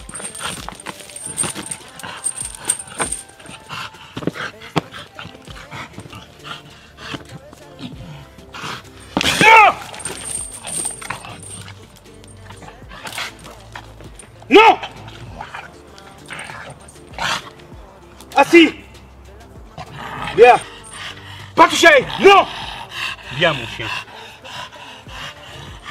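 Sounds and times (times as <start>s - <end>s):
chain clinking and scraping: 0.0s - 22.6s
dog crying out: 9.2s - 10.3s.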